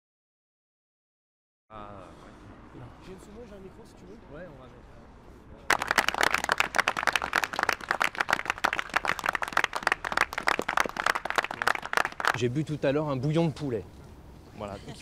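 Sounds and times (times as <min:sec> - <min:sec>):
people clapping: 0:05.7 - 0:12.5.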